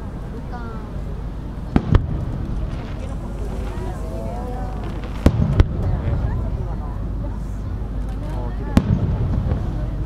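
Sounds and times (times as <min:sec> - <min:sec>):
crowd chatter: 0:00.0 - 0:10.0
firework shells bursting: 0:04.8 - 0:06.0.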